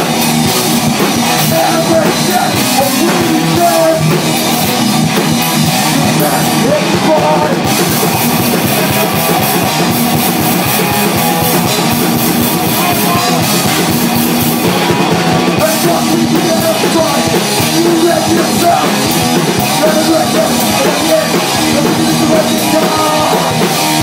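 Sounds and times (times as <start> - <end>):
punk band playing live: 0.0 - 24.0.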